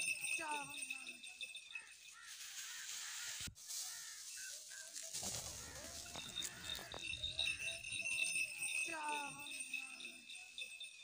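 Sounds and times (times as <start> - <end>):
crow-like caws: 2.1 - 4.3.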